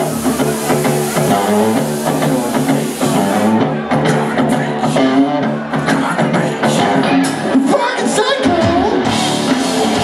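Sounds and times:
rock band playing: 0.0s - 5.9s, 7.0s - 10.0s
electric guitars: 0.0s - 10.0s.

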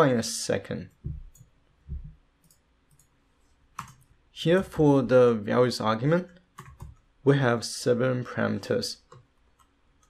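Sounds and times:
computer mouse clicks: 2.4s - 3.2s, 3.8s - 4.1s, 6.3s - 7.1s, 9.1s - 10.0s.

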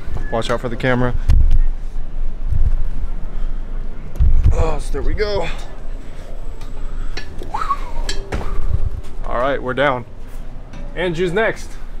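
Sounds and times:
microphone handling rumble: 4.1s - 4.6s, 7.3s - 9.5s.

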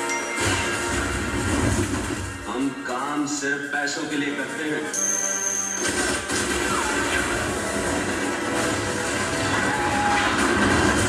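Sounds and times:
trailer music: 0.0s - 11.0s
low rumble and clatter: 7.0s - 11.0s.

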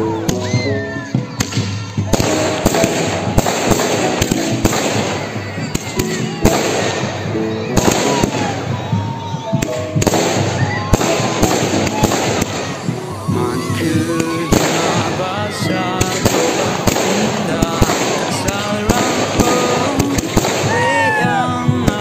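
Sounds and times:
fireworks bangs and crackles: 0.0s - 22.0s.

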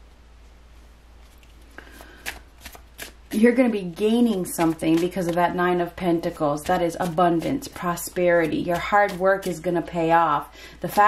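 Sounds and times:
faint steady hum: 0.0s - 11.0s
cards flicking and rustling: 1.2s - 3.4s, 4.2s - 5.5s.

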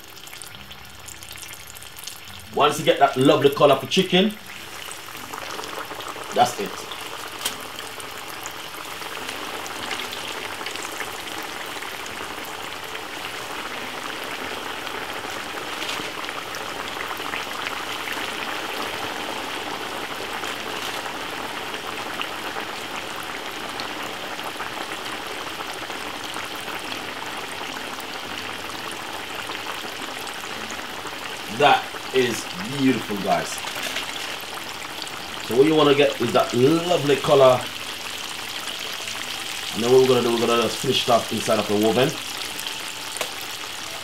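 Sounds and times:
chicken frying in hot oil: 0.0s - 44.0s.

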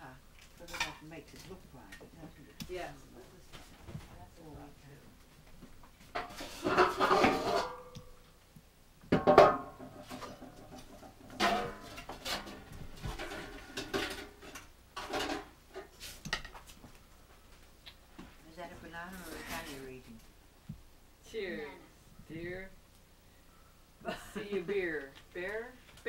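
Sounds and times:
dishes and kitchenware clattering: 6.1s - 8.0s, 9.1s - 16.5s.

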